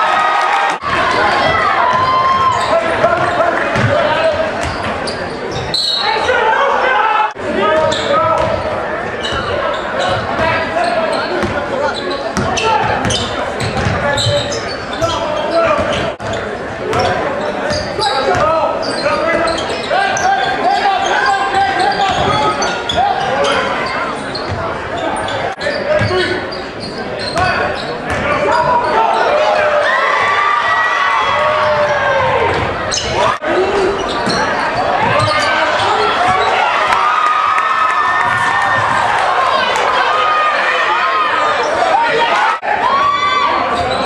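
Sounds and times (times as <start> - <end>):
crowd voices and shouts: 0.0 - 44.0
basketball bouncing on court: 3.1 - 5.7, 7.8 - 8.6, 11.4 - 11.6, 12.4 - 18.6, 27.3 - 28.4, 35.0 - 35.5.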